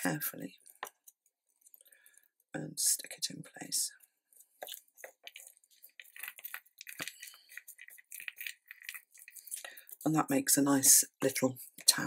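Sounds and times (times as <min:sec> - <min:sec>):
paper and card rustling: 0:04.3 - 0:12.0.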